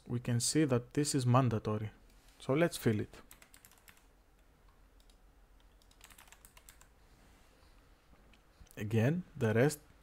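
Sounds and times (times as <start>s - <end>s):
computer keyboard typing: 3.2s - 4.1s, 4.7s - 6.9s.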